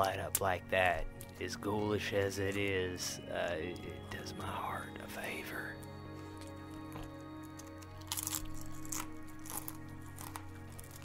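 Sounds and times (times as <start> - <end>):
soft background music: 0.0 - 11.0
crisps crunching: 6.3 - 11.0.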